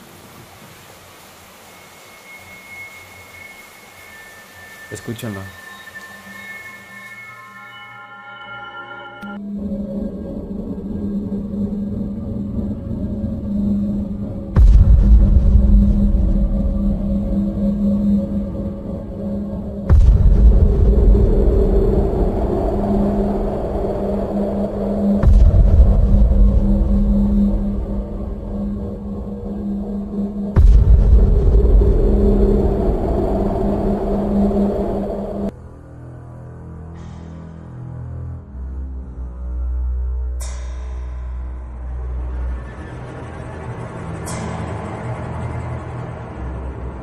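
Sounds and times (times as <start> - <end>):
low hum: 1.4 - 47.0
deep rumble: 9.4 - 37.5.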